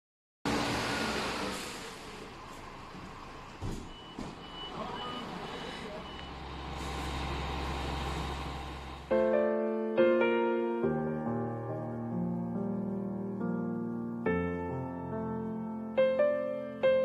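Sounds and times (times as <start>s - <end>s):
street and engine noise: 0.5s - 9.1s
low engine hum: 0.6s - 9.1s
high reversing beeps: 3.2s - 7.1s.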